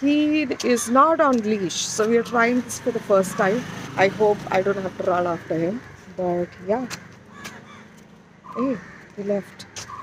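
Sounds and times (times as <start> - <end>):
crows cawing: 0.2 - 10.0.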